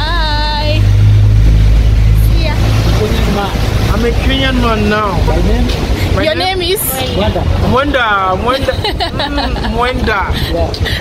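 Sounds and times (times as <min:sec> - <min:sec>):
street traffic rumble: 0:00.0 - 0:11.0
vehicle engine running nearby: 0:00.0 - 0:11.0.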